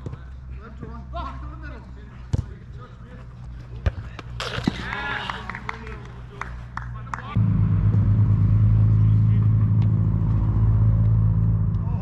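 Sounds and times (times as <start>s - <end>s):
distant players shouting: 0.1s - 7.4s
steady low hum: 6.6s - 12.0s.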